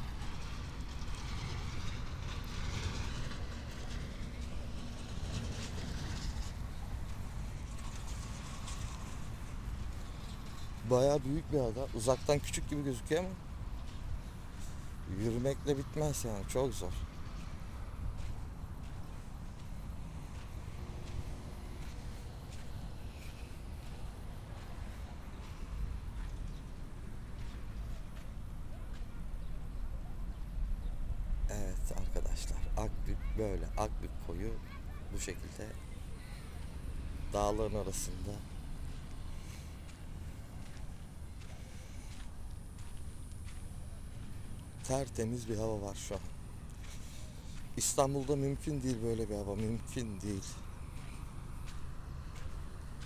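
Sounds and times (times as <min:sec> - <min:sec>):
footsteps on sand: 0:00.2 - 0:29.8, 0:35.2 - 0:53.0.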